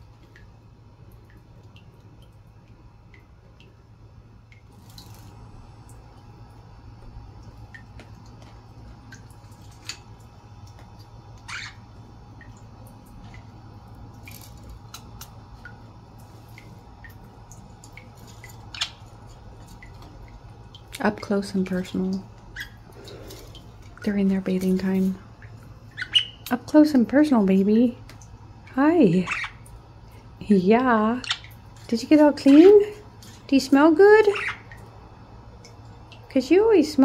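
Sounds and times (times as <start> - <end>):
water dripping into plastic dish: 0.0 - 26.6, 28.0 - 28.8, 35.6 - 36.3
steady low hum: 0.0 - 37.0.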